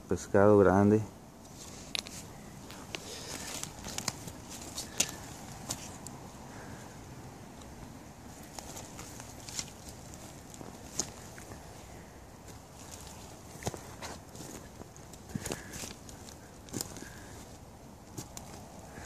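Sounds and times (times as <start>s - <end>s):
faint outdoor background: 0.0s - 19.0s
twigs crackling and snapping: 1.4s - 6.8s, 7.5s - 19.0s.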